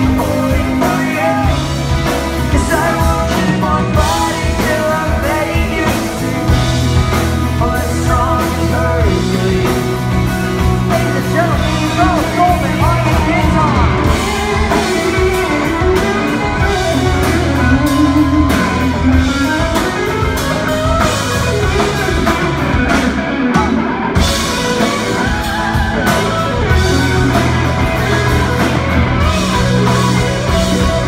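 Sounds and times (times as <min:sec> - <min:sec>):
drum kit: 0:00.0 - 0:31.0
electric guitar: 0:00.0 - 0:31.0.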